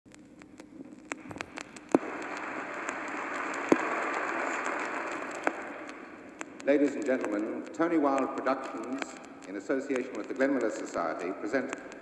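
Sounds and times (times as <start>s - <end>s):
vinyl record crackle and hiss: 0.1s - 12.0s.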